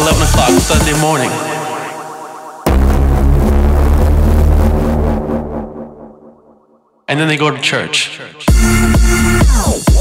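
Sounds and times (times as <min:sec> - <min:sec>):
deep bass synth note: 0:02.7 - 0:06.8.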